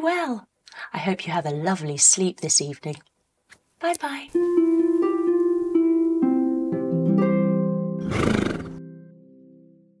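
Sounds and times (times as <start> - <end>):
horse whinny: 8.0 - 8.8.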